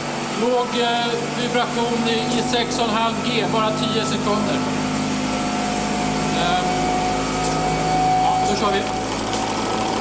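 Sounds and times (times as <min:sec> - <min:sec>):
steady mechanical hum: 0:00.0 - 0:10.0
man talking: 0:00.4 - 0:04.7, 0:06.3 - 0:06.9, 0:08.2 - 0:09.0.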